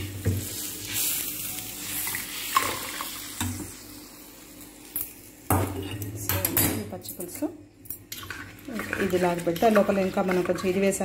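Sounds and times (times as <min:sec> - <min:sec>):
oil sizzling in a pan: 0:00.0 - 0:06.0
metal utensils clinking on pans: 0:05.0 - 0:11.0.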